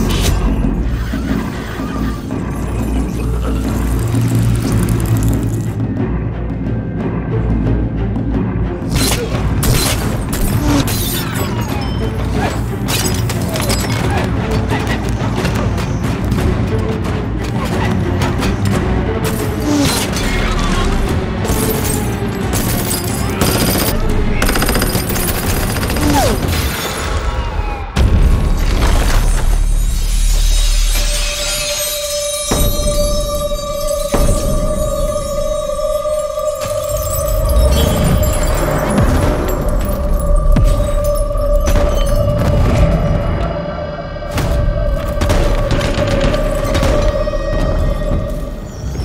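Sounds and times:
dark film score: 0:00.0 - 0:49.0
rapid automatic gunfire: 0:23.4 - 0:26.5.

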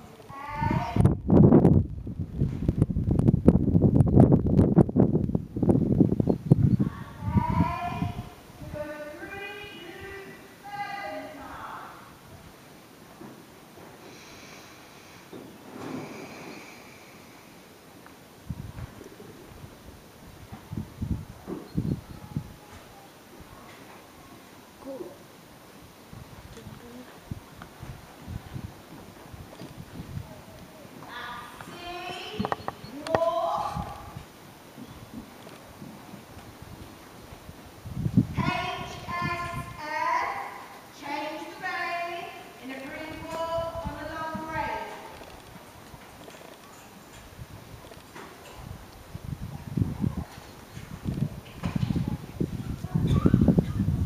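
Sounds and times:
hooves thudding on sand: 0:27.2 - 0:32.8, 0:34.7 - 0:37.7.

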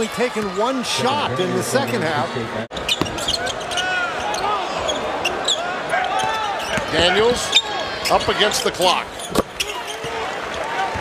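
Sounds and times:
arena crowd noise: 0:00.0 - 0:11.0
sneaker squeaks: 0:02.7 - 0:08.4, 0:09.1 - 0:11.0.

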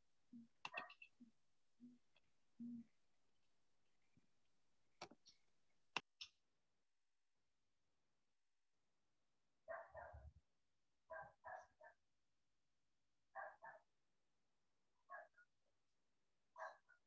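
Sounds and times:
dog barking faintly: 0:09.7 - 0:10.4, 0:11.1 - 0:12.0, 0:13.4 - 0:13.9, 0:15.1 - 0:15.4, 0:16.6 - 0:17.0.

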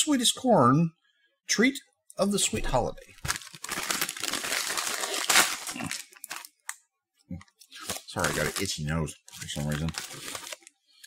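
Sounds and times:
plastic snack bag crinkling: 0:03.1 - 0:06.8, 0:07.5 - 0:11.0.

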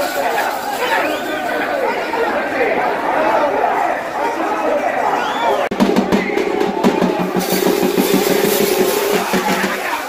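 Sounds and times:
crowd noise: 0:00.0 - 0:10.0
fast even drumming: 0:05.7 - 0:10.0.

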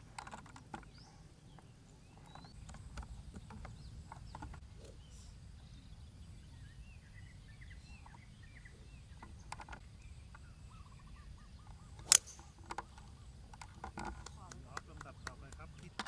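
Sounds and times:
birds chirping: 0:00.0 - 0:16.0
golf club striking ball: 0:12.0 - 0:12.6.

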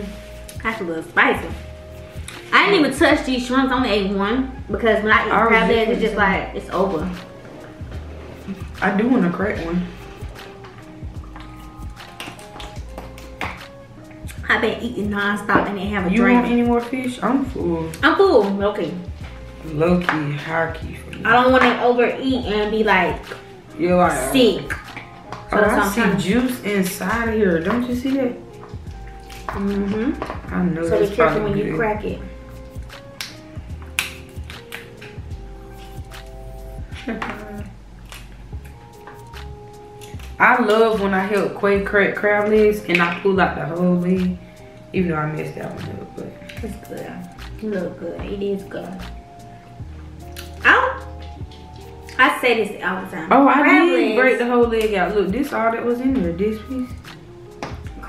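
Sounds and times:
quiet background music: 0:00.0 - 0:58.0
crab shells cracking by hand: 0:33.2 - 0:35.2.

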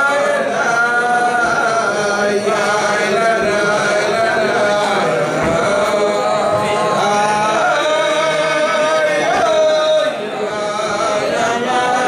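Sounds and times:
men singing wordless melody: 0:00.0 - 0:12.0.

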